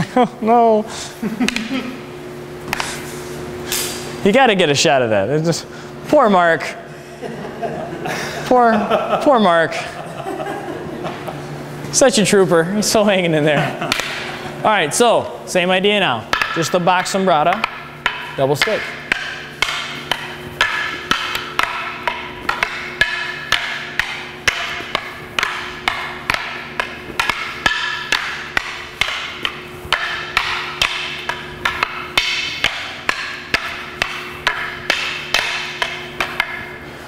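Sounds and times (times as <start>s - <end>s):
sticks clacking together: 16.3s - 36.8s.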